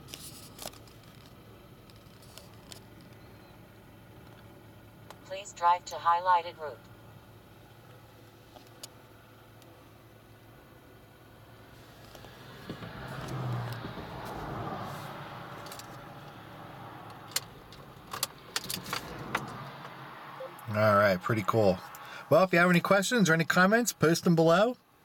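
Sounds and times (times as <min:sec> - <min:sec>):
rustling noise: 0:00.0 - 0:01.3
car engine idling quietly: 0:00.0 - 0:25.0.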